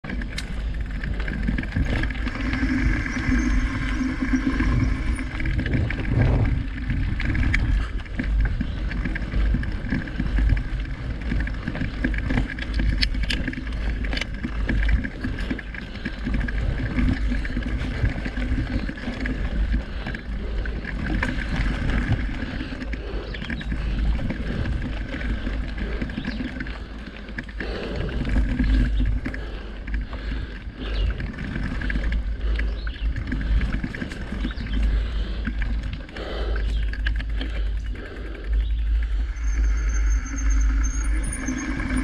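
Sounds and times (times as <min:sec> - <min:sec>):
bike clicks and rattles: 0:00.0 - 0:42.0
tyres rolling on dirt: 0:00.0 - 0:42.0
wind on microphone: 0:00.4 - 0:14.1.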